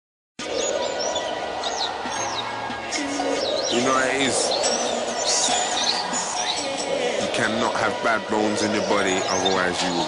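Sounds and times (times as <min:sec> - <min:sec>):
birdsong chirps: 0:00.4 - 0:10.0
high whistled glides: 0:00.4 - 0:10.0.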